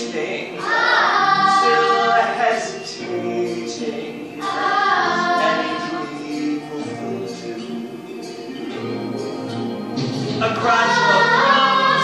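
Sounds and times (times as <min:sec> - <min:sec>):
children's choir singing: 0:00.0 - 0:09.7, 0:10.4 - 0:12.0.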